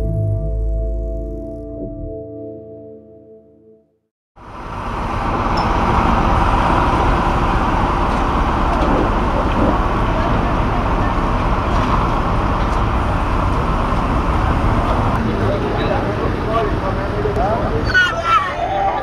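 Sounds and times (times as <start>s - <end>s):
truck engine running: 4.4s - 17.8s
hydraulic crane drone: 4.4s - 17.9s.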